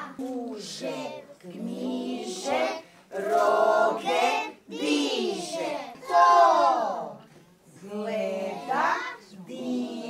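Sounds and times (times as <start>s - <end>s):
children shouting together: 4.8s - 7.0s.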